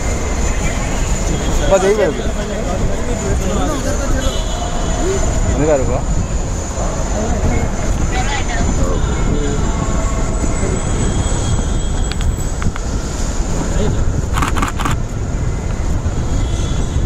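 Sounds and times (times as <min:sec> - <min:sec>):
low rumble of traffic: 0:00.0 - 0:17.0
wind on the microphone: 0:00.0 - 0:17.0.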